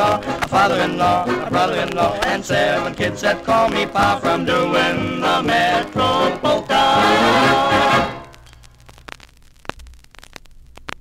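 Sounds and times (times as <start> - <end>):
vinyl clicks and pops: 0.0 - 4.5, 5.1 - 11.0.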